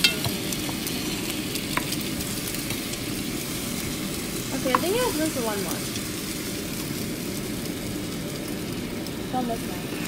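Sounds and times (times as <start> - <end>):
bread frying in butter: 0.0 - 10.0.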